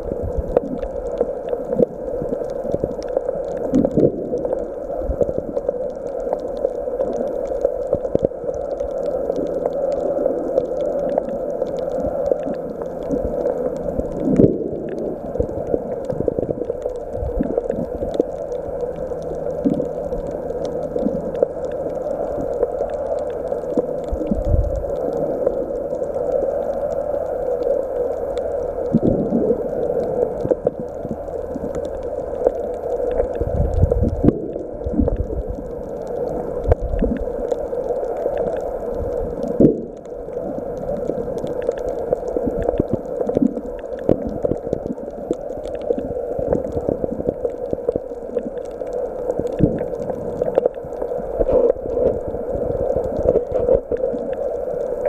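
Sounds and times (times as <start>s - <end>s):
muffled underwater water rush: 0.0s - 55.0s.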